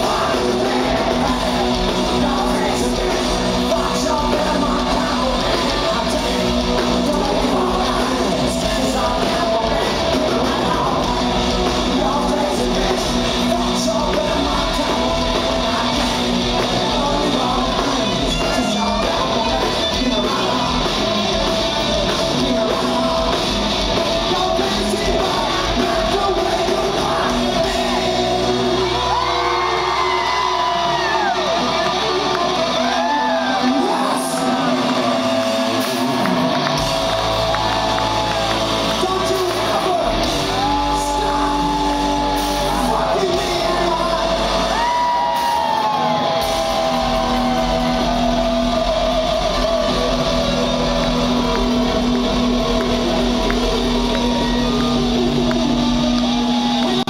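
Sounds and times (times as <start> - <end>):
crowd shouting: 0.0 - 57.0
electric guitars holding a chord: 0.0 - 57.0
live hard rock band: 0.0 - 57.0.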